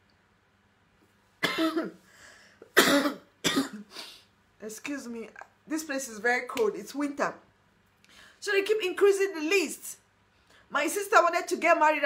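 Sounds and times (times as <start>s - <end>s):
woman coughing: 1.4s - 2.0s, 2.7s - 4.0s.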